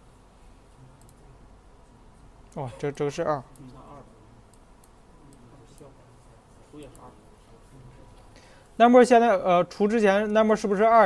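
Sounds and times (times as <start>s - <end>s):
low room hum: 0.0s - 11.0s
computer mouse clicks: 1.0s - 1.2s.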